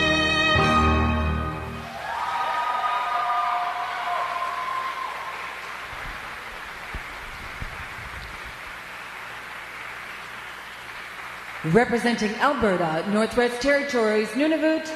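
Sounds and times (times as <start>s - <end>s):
audience applause: 1.8s - 12.0s.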